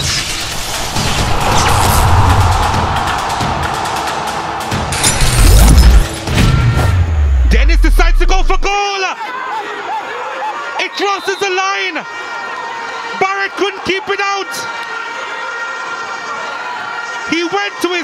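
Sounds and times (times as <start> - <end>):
crash and deep bass boom: 0.0 - 8.7
sound-design intro music: 0.0 - 8.7
excited commentator voice: 7.5 - 9.3.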